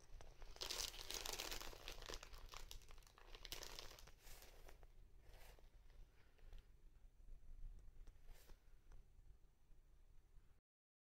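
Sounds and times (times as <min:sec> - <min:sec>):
plastic bag crinkling: 0:00.0 - 0:04.8.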